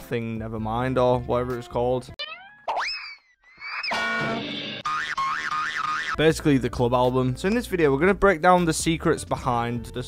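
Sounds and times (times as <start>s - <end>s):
falling cartoon whistle glides: 2.2s - 4.4s
warbling tone: 2.2s - 6.2s.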